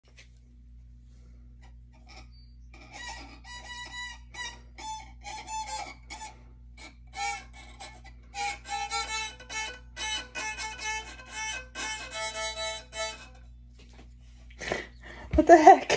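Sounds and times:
violin being bowed: 0:02.1 - 0:13.6.

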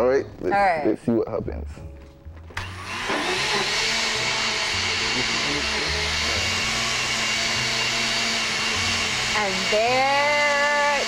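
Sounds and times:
blender whirring: 0:02.6 - 0:11.0.

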